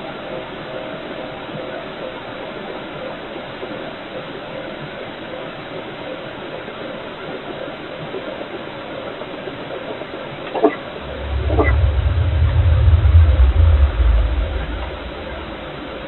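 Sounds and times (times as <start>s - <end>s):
faint steady hum: 10.6s - 16.0s
microphone hiss: 10.6s - 16.0s.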